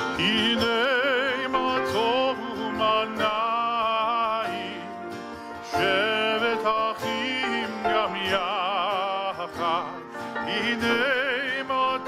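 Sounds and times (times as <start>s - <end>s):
man singing with vibrato: 0.0s - 12.0s
strummed acoustic guitar: 0.0s - 12.0s.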